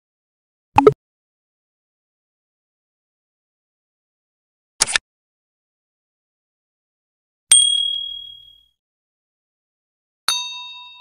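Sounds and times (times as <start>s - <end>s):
bell-like ding: 7.5s - 8.7s, 10.3s - 11.0s.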